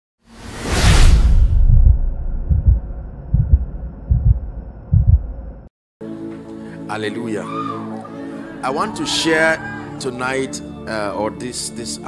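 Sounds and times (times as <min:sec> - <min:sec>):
whoosh: 0:00.3 - 0:03.9
deep rumble: 0:00.8 - 0:05.7
deep thumps: 0:01.1 - 0:05.7.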